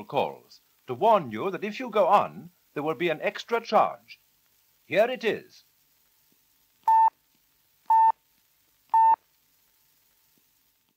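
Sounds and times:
telephone time signal pips: 6.9 - 7.1, 7.9 - 8.1, 8.9 - 9.2.

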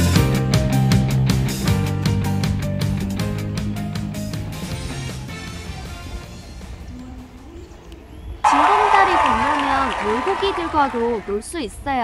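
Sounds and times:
faint background music: 4.5 - 8.4.

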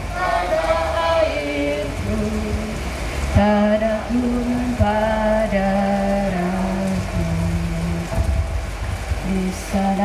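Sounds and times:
woman singing over pa system: 0.0 - 2.8, 3.4 - 8.4, 9.2 - 10.0.

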